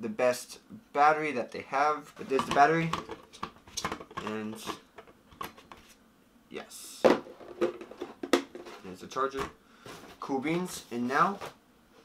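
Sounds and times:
items knocking in cardboard box: 7.1s - 8.8s.

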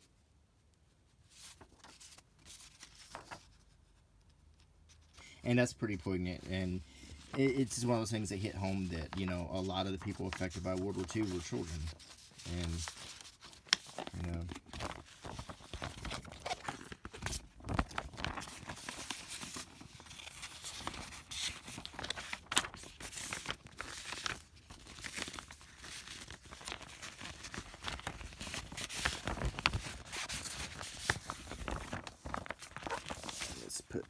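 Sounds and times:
paper rustling: 1.2s - 4.0s, 4.6s - 34.0s
plastic sleeves crackling: 5.7s - 34.0s.

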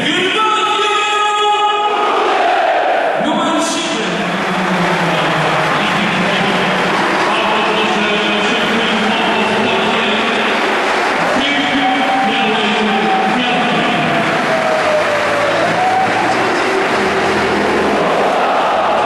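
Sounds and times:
crowd roaring: 1.6s - 19.0s
crowd singing chant: 16.7s - 19.0s.

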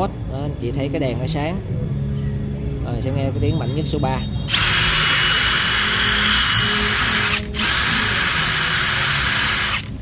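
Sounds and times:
impact wrench whining: 4.5s - 10.0s.

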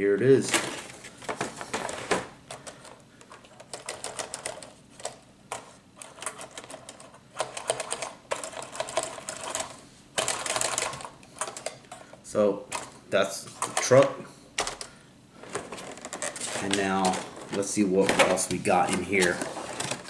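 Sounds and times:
plastic tray crackling: 15.4s - 20.0s.

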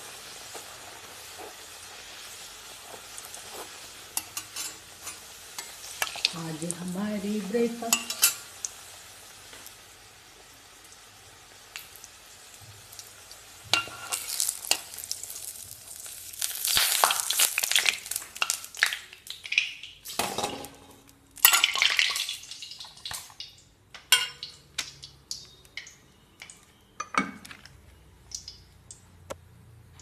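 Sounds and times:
oil sizzling: 0.0s - 29.2s
metal spoon scraping a pan: 2.9s - 6.3s, 7.8s - 8.5s, 13.7s - 14.9s
steel dishes clinking: 4.2s - 5.2s, 24.0s - 24.5s.

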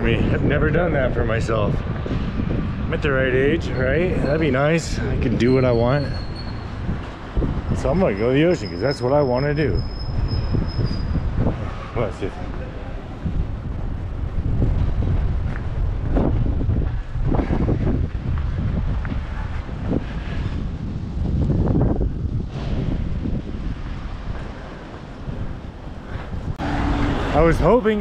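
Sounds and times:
street traffic: 0.0s - 28.0s
wind buffeting microphone: 0.0s - 28.0s.

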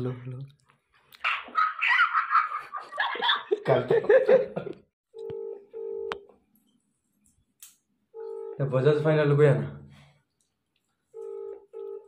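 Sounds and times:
phone ringback tone: 5.2s - 6.2s, 8.2s - 8.6s, 11.2s - 12.0s.

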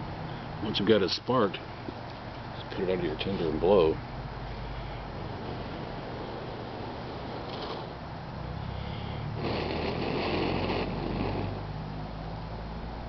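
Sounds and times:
person blowing puffs of breath: 8.6s - 11.7s.

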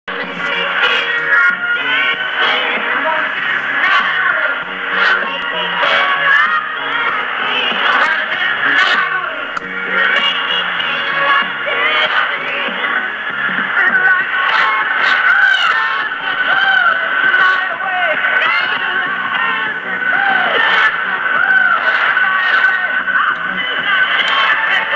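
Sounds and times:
muffled radio music: 0.0s - 24.9s.

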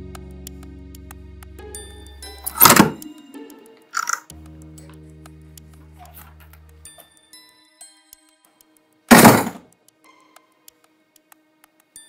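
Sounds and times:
soft background music: 0.0s - 12.0s
door slamming: 2.6s - 3.0s, 9.1s - 9.6s.

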